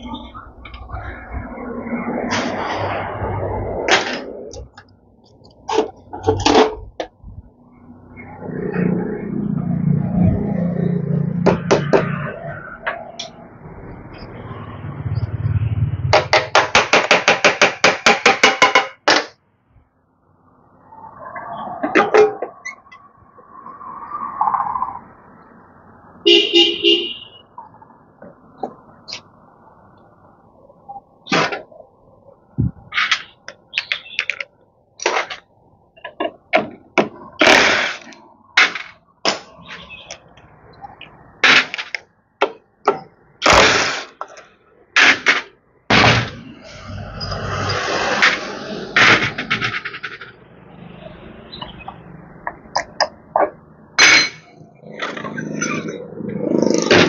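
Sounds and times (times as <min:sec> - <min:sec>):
tools and parts clinking: 0:32.9 - 0:40.3, 0:52.6 - 0:56.1.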